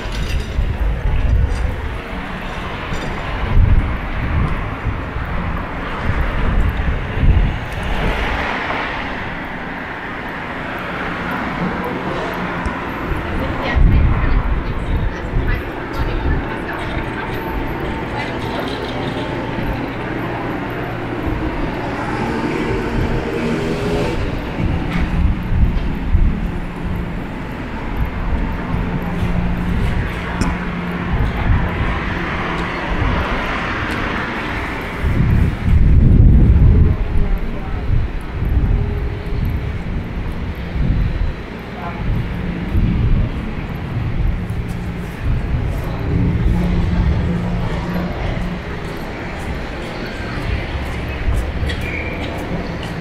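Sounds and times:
passers-by talking: 0:00.0 - 0:53.0
traffic and engines hum: 0:00.0 - 0:53.0
loud low rumble: 0:11.2 - 0:53.0.

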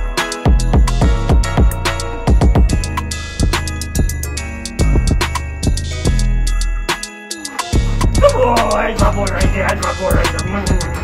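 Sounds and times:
hip-hop music with beat: 0:00.0 - 0:11.0
wavering voice: 0:07.4 - 0:11.0.

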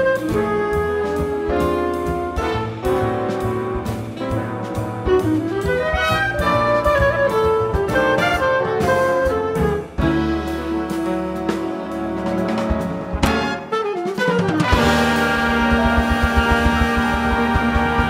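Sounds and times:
bass: 0:00.0 - 0:18.0
clarinet jazz solo: 0:00.0 - 0:18.0
drums: 0:00.0 - 0:18.0.

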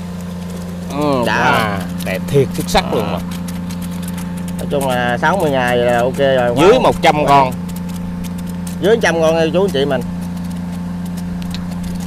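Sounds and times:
steady motor hum: 0:00.0 - 0:12.0.

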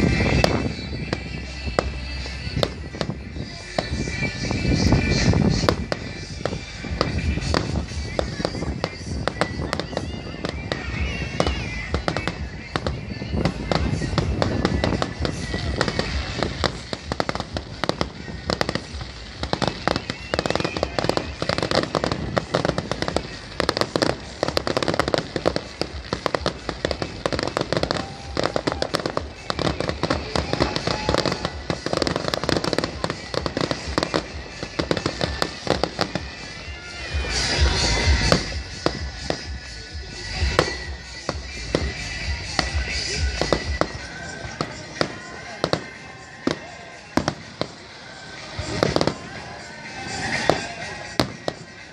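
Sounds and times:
fireworks bursting and crackling: 0:00.0 - 0:51.9.

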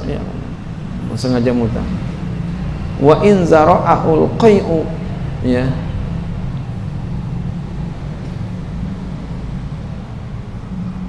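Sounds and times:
low rumble and hum: 0:00.0 - 0:11.0.

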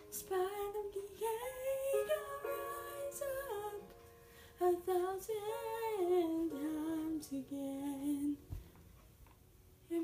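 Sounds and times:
girl singing unaccompanied: 0:00.0 - 0:04.0, 0:04.6 - 0:08.5.

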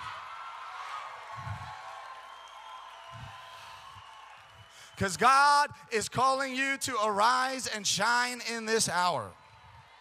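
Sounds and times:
congregation cheering and clapping: 0:00.0 - 0:10.0.

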